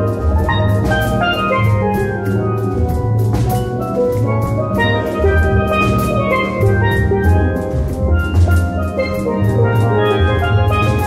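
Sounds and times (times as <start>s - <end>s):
drum kit beat: 0.0s - 11.0s
low bass pan notes: 0.0s - 11.0s
steel pans playing melody: 0.0s - 11.0s.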